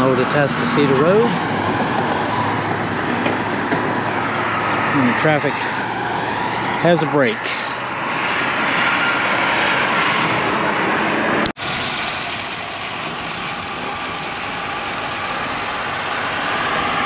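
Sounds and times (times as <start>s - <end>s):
tyre noise on road: 0.0s - 17.0s.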